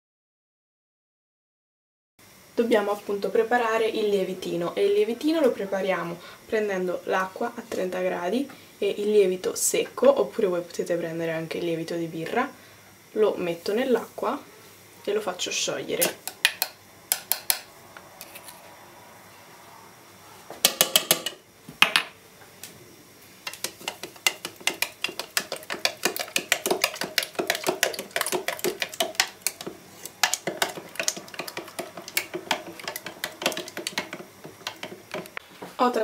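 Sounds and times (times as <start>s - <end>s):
plastic spoon stirring in jug: 23.4s - 35.4s
spoon tapping jug sides: 23.4s - 35.4s.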